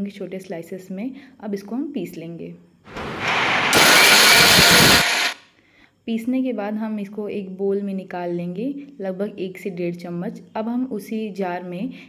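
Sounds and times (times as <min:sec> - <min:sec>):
mixer grinder whirring: 0:02.9 - 0:05.4.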